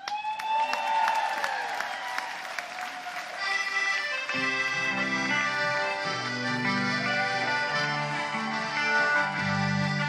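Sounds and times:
long high cheer: 0.0 - 3.6
audience applauding and cheering: 0.0 - 4.6, 6.8 - 9.6
accordion chords: 3.3 - 10.0.

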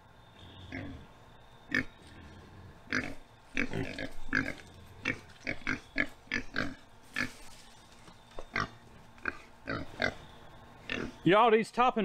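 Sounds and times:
pigs grunting: 0.4 - 7.5, 8.5 - 11.3.

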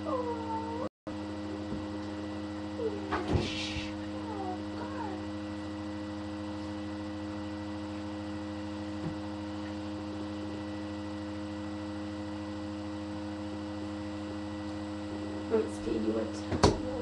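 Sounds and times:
steady multi-pitch hum: 0.0 - 17.0.

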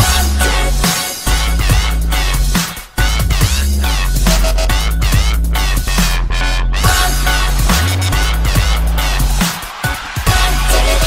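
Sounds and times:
deep sustained bass: 0.0 - 9.4
sweeping bending synth sounds: 5.6 - 11.0.

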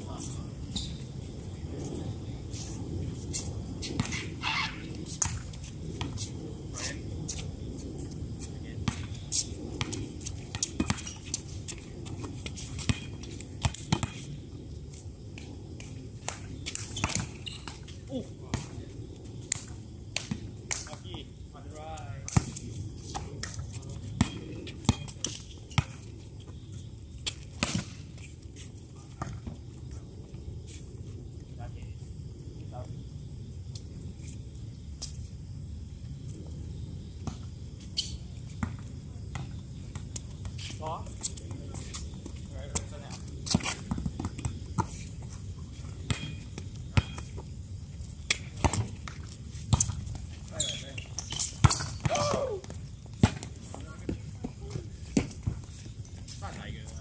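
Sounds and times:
players calling out: 52.0 - 52.8.

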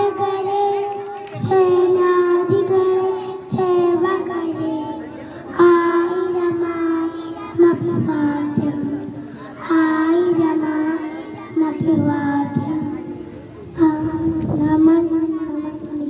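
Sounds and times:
children singing into a microphone: 0.0 - 16.0.

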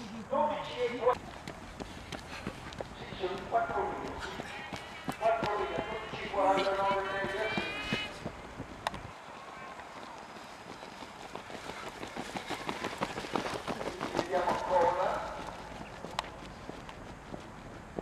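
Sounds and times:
running footsteps on a track: 0.0 - 18.0
man's voice: 3.0 - 8.0, 14.1 - 15.4.

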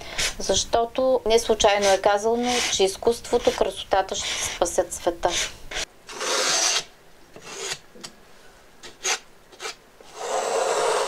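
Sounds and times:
palette knife scraping canvas: 1.4 - 7.8, 8.8 - 11.0.

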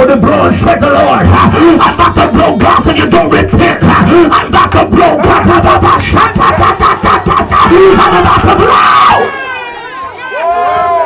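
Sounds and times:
man grunting: 1.1 - 9.2
congregation shouting: 1.2 - 11.0.

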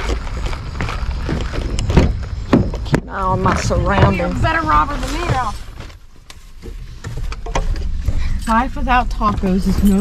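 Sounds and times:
rustling: 0.0 - 8.8
truck cab rumble: 0.0 - 10.0.

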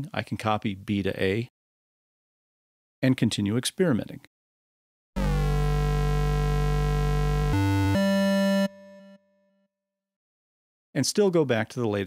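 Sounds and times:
bright buzzy synthesizer note: 5.2 - 9.2.

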